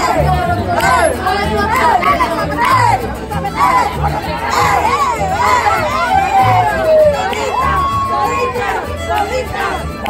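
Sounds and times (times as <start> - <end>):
crowd shouting and cheering: 0.0 - 10.0
mariachi band playing: 0.0 - 10.0.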